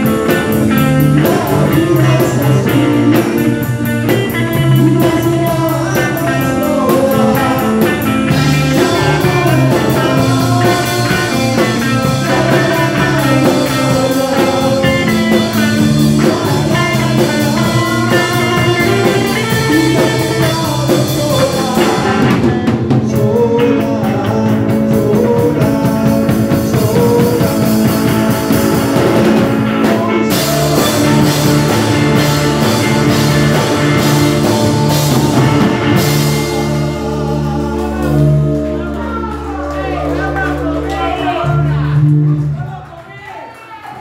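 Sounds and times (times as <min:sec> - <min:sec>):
live rock band playing: 0:00.0 - 0:42.6
loud drum kit: 0:00.0 - 0:42.7
person singing: 0:00.0 - 0:42.7.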